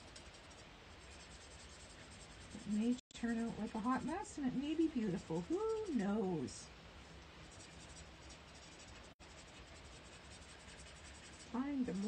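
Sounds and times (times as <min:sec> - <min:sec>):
marker scratching on cardstock: 0:00.0 - 0:03.0, 0:04.9 - 0:06.1, 0:07.5 - 0:12.0.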